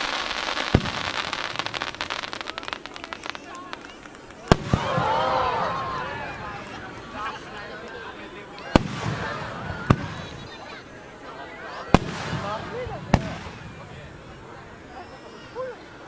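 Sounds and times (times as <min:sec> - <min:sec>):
fireworks bangs: 0:00.0 - 0:10.8, 0:11.7 - 0:15.0
crowd chatter: 0:00.0 - 0:16.0.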